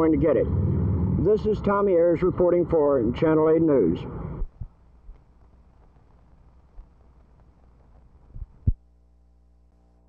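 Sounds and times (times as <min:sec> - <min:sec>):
low thumps: 0:00.0 - 0:02.8
electrical hum: 0:00.0 - 0:10.0.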